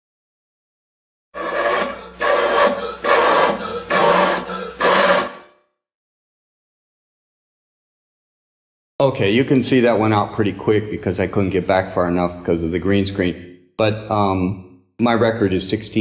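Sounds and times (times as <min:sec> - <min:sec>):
breaths blown through a cardboard tube: 0:01.4 - 0:05.5.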